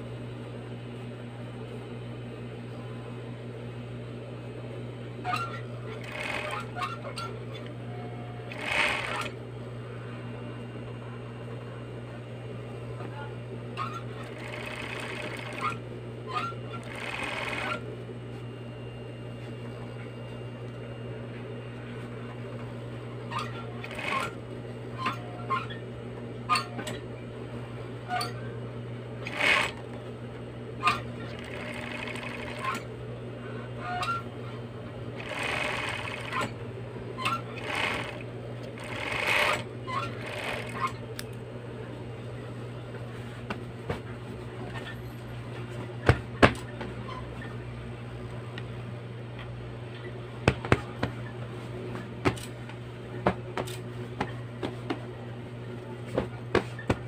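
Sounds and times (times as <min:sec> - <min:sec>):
sewing machine motor hum: 0:05.2 - 0:09.4, 0:13.8 - 0:18.0, 0:23.2 - 0:25.8, 0:29.2 - 0:30.1, 0:30.8 - 0:33.0, 0:35.1 - 0:41.3
sewing machine needle running: 0:06.0 - 0:06.9, 0:08.5 - 0:09.4, 0:13.8 - 0:15.8, 0:16.7 - 0:17.8, 0:29.2 - 0:29.9, 0:30.9 - 0:32.9, 0:35.2 - 0:36.6, 0:37.2 - 0:41.0.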